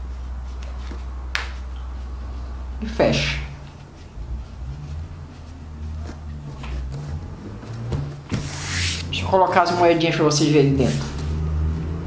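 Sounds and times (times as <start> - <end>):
fabric rustling: 0.0 - 9.2
steady low hum: 0.0 - 12.0.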